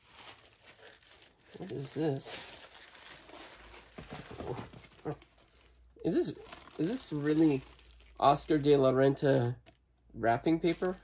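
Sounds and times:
plastic sleeve crinkling: 0.0 - 9.9, 10.5 - 11.0.

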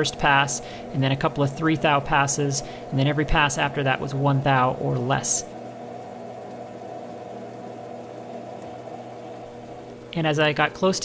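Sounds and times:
metal lathe humming: 0.0 - 11.0.

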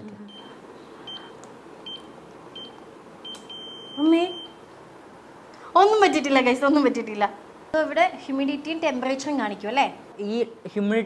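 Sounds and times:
keypad beeps: 1.1 - 4.6.

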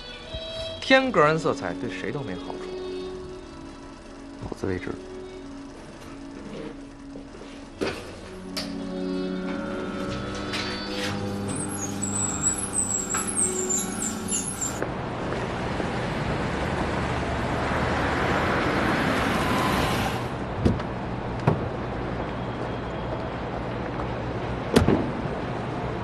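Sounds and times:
car driving up: 3.5 - 26.0.

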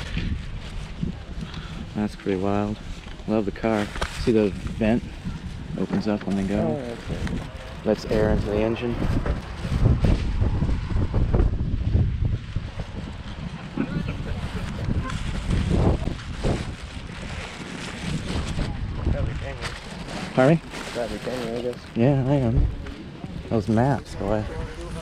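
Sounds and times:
wind buffeting microphone: 0.0 - 25.0
faint voices: 13.5 - 15.6.

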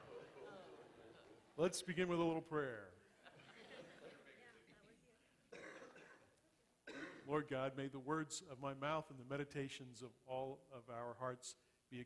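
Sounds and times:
person clearing throat: 5.5 - 6.3, 6.9 - 7.3.

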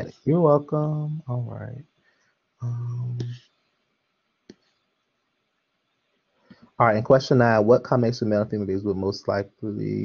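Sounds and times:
person saying um: 0.0 - 1.8, 2.6 - 3.4, 6.8 - 10.0.

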